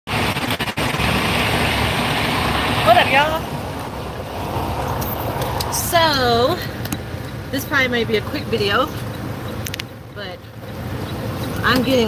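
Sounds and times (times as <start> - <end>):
truck engine rumbling: 0.1 - 12.0.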